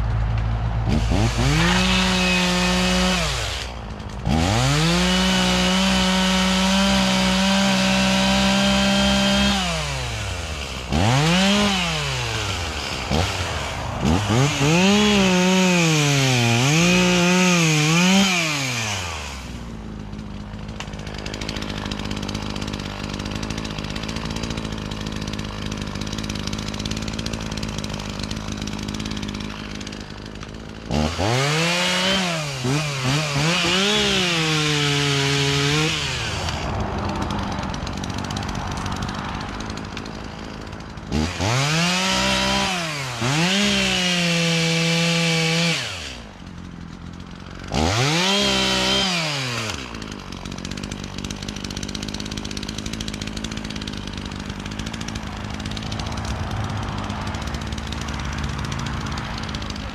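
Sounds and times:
chainsaw cutting wood: 0:00.0 - 0:59.9
chainsaw idling: 0:00.0 - 0:59.9.

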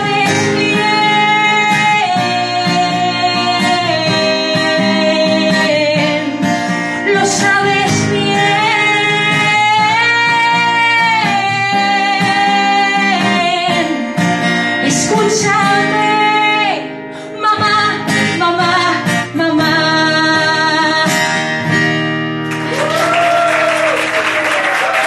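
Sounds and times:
woman singing: 0:00.0 - 0:21.6
strummed acoustic guitar: 0:00.0 - 0:22.7
audience applause: 0:22.5 - 0:25.0.

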